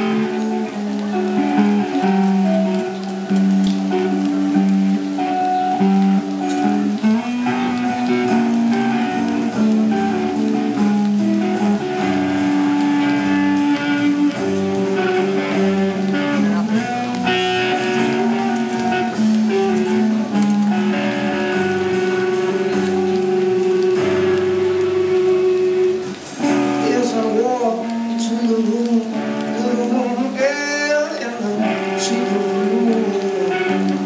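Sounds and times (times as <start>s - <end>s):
hard rock band playing: 0.0s - 28.4s
loud electric guitar: 0.0s - 34.0s.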